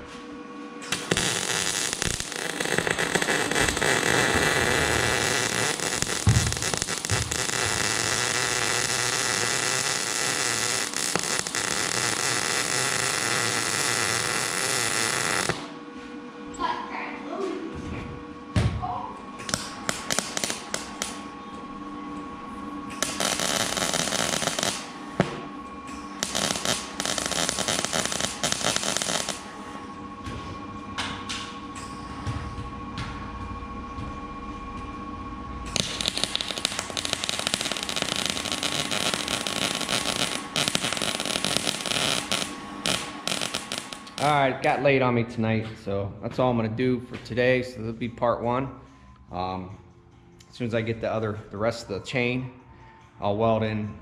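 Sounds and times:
arc welding crackling: 0:00.8 - 0:15.8, 0:19.4 - 0:21.4, 0:22.9 - 0:29.8, 0:35.7 - 0:44.8.

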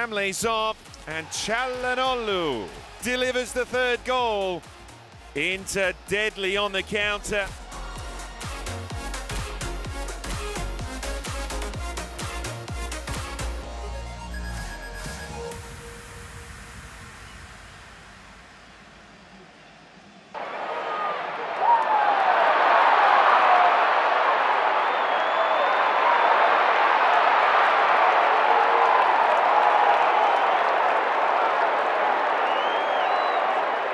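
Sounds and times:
crowd cheering and applauding: 0:00.0 - 0:13.7, 0:18.9 - 0:33.9
music: 0:00.0 - 0:19.3.

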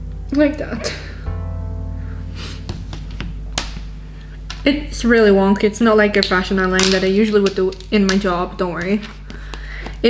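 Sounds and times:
background music: 0:00.0 - 0:06.2.

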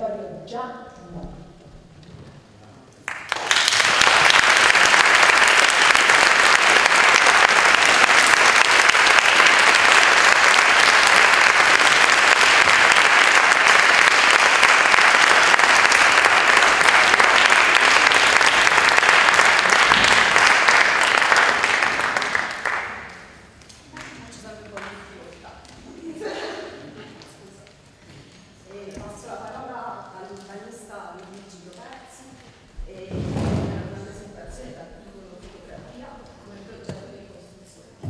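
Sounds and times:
audience applauding: 0:03.0 - 0:24.9.

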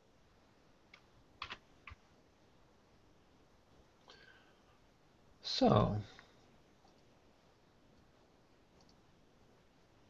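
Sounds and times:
computer keyboard clicks: 0:00.9 - 0:02.0.

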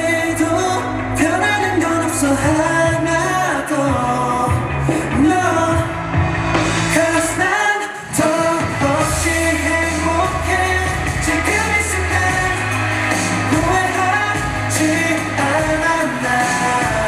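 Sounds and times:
man singing pop vocal: 0:00.0 - 0:17.0
synth bass and beat: 0:00.0 - 0:17.0.

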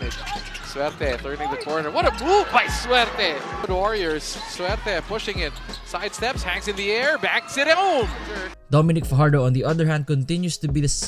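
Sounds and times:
basketball game sound: 0:00.0 - 0:09.8
background music: 0:00.0 - 0:11.0
sports commentator calling action: 0:01.1 - 0:10.9.

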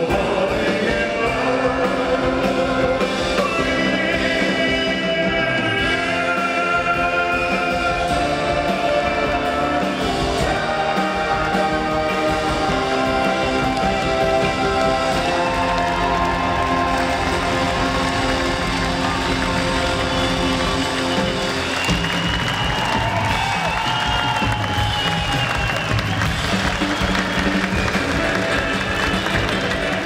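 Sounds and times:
crowd applause and cheering: 0:00.0 - 0:30.0
live band with brass section: 0:00.0 - 0:30.0.

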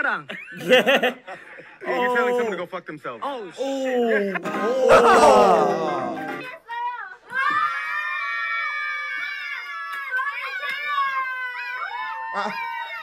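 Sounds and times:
woman screaming: 0:03.6 - 0:06.5.

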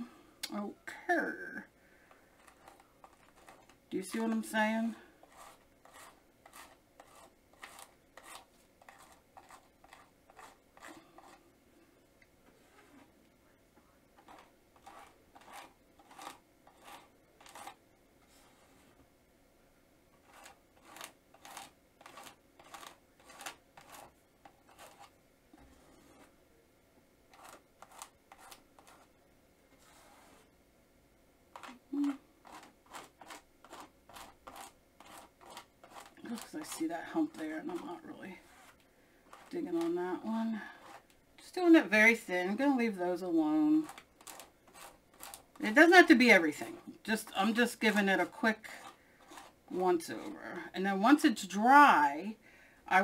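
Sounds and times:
rhythmic scraping strokes: 0:02.4 - 0:11.4, 0:14.2 - 0:18.9.

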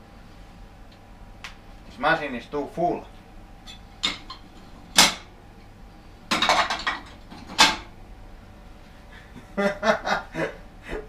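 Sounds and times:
ceramic plates clattering: 0:06.3 - 0:07.8.

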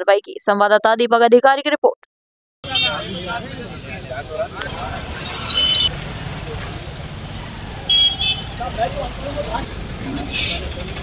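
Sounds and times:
people talking: 0:00.0 - 0:02.1, 0:02.7 - 0:05.2, 0:08.6 - 0:11.0
vehicle horn toots: 0:02.6 - 0:03.4, 0:05.5 - 0:05.9, 0:07.9 - 0:08.7
traffic rumble: 0:02.6 - 0:11.0.

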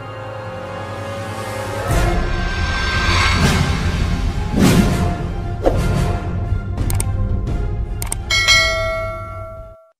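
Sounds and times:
quick clicks: 0:06.8 - 0:07.1, 0:08.0 - 0:08.2
bell-like chime: 0:08.3 - 0:09.9.

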